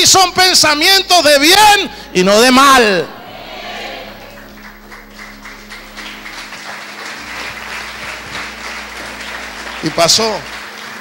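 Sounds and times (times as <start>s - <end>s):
crowd applauding: 3.0s - 11.0s.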